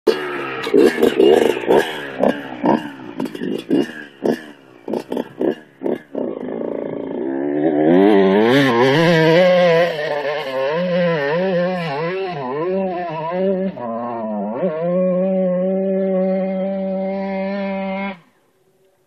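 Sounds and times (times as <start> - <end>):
dirt bike engine revving: 0.1 - 18.4.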